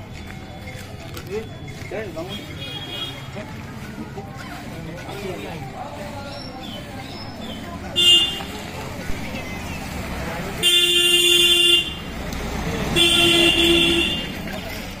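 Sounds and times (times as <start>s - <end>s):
street traffic: 0.0s - 15.0s
vehicle horn honking: 10.6s - 12.1s, 12.9s - 14.4s.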